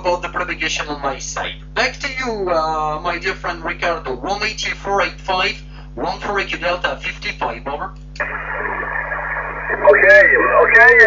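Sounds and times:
low steady hum: 0:00.0 - 0:11.0
radio static hiss: 0:07.2 - 0:11.0
distant radio voice: 0:07.6 - 0:11.0.

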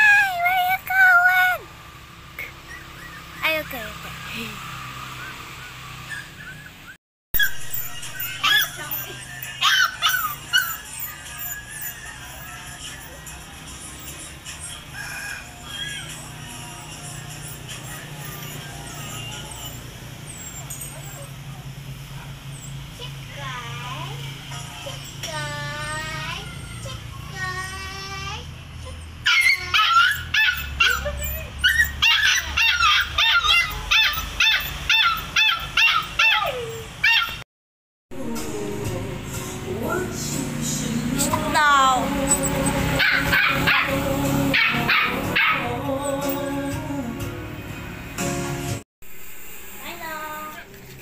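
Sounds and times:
puppy yipping: 0:02.4 - 0:03.6, 0:05.1 - 0:22.8, 0:26.4 - 0:27.8, 0:28.8 - 0:37.4, 0:42.2 - 0:46.5.

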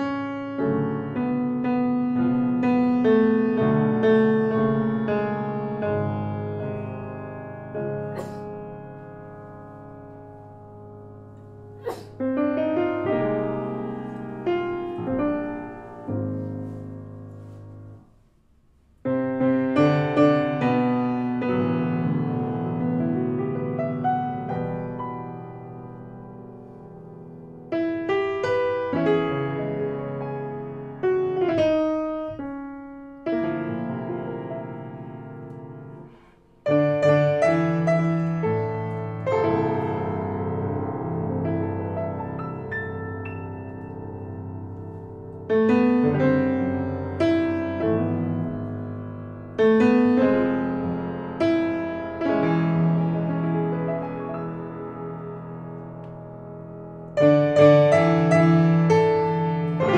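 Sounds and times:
grand piano chords: 0:00.0 - 0:59.9.

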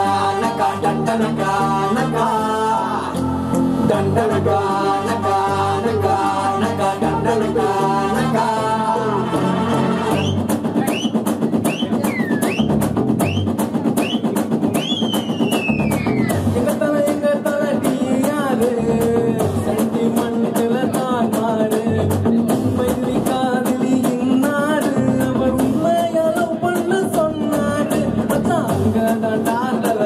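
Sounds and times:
man singing into microphone: 0:00.0 - 0:10.3, 0:16.5 - 0:30.0
backing track with drums: 0:00.0 - 0:30.0.

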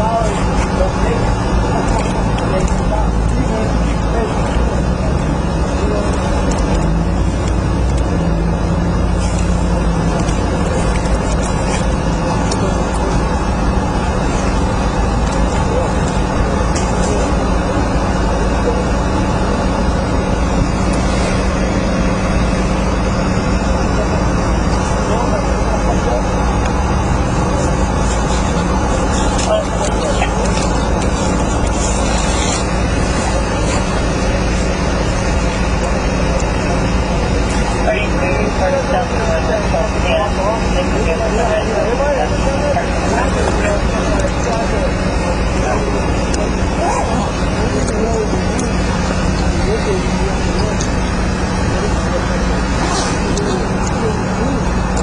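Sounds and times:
loud rumbling noise: 0:00.0 - 0:55.0
muffled indistinct voices: 0:00.0 - 0:55.0.

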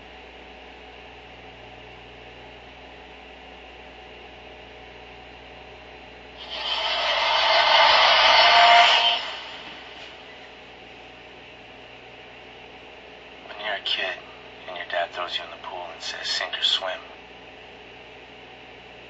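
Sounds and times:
phone speaker hum and hiss: 0:00.0 - 0:19.0
loud burst of static noise: 0:06.4 - 0:10.4.

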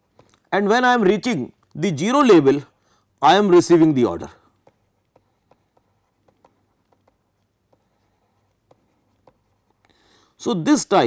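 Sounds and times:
stylus tapping on pen tablet: 0:04.5 - 0:10.0.

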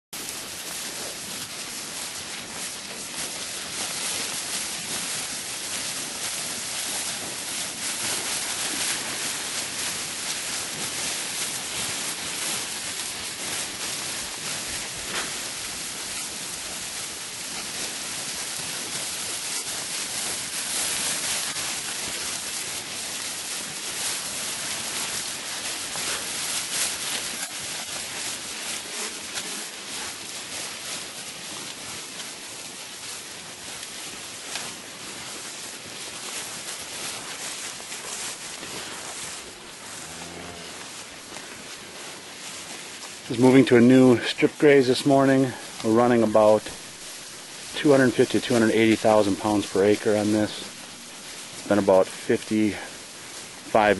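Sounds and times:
dry grass rustling: 0:00.2 - 0:53.9.

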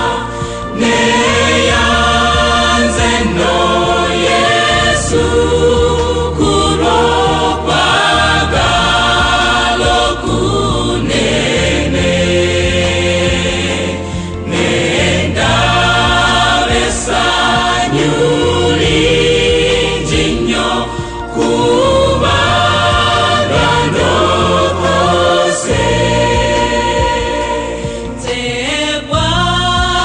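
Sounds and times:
choir singing in harmony: 0:00.0 - 0:30.0.

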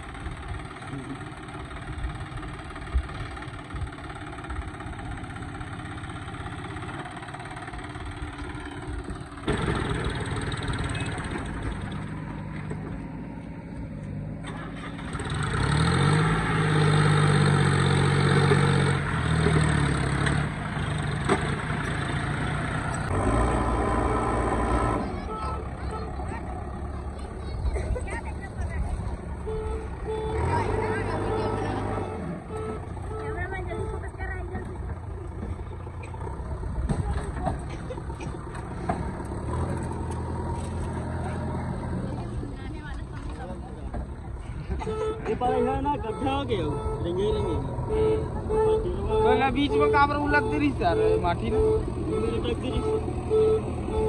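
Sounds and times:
tractor diesel engine pulling: 0:00.0 - 0:54.0.

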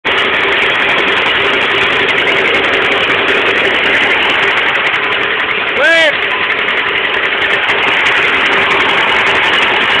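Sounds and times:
tractor engine running: 0:00.0 - 0:10.0
person shouting: 0:05.8 - 0:06.2.

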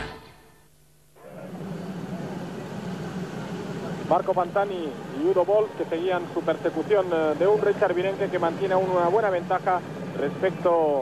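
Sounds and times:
low engine hum with hiss: 0:01.0 - 0:11.0.

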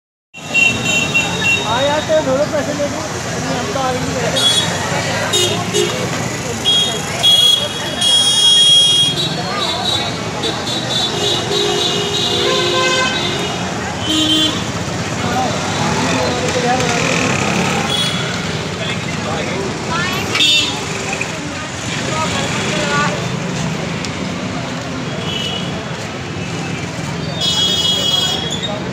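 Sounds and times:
crowd chattering: 0:00.4 - 0:28.9
street voices: 0:00.4 - 0:28.9
traffic: 0:00.4 - 0:28.9
vehicle horn toot: 0:11.0 - 0:14.7.

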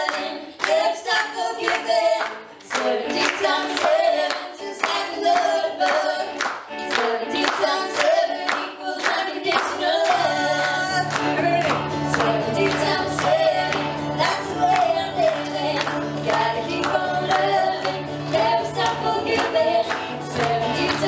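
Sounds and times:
hand clapping: 0:00.0 - 0:21.0
voices singing: 0:00.0 - 0:21.0.

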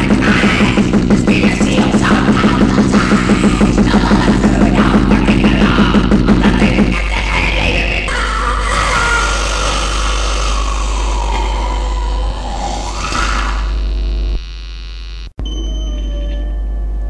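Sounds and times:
distorted guitar noise: 0:00.0 - 0:08.0, 0:10.6 - 0:15.4
mains hum: 0:08.6 - 0:17.0.

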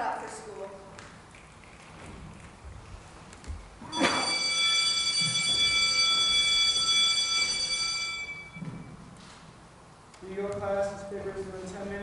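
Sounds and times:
bell ringing: 0:03.9 - 0:09.0.

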